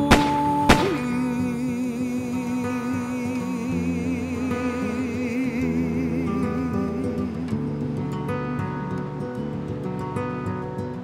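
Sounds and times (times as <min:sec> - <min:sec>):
sharp bangs: 0:00.0 - 0:01.4
music with long held notes: 0:00.0 - 0:11.0.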